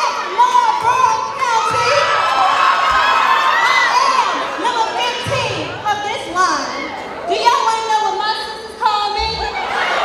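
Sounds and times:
audience cheering and screaming: 1.6s - 5.0s, 9.4s - 10.0s.

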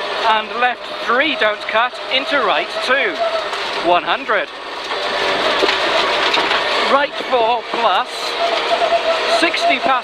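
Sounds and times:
rally car engine: 0.0s - 10.0s
tyres rushing on gravel: 0.0s - 10.0s.

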